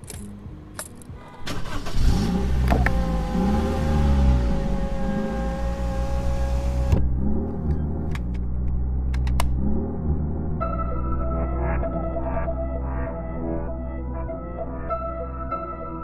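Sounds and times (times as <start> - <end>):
car engine revving in a beat: 1.2 - 10.6.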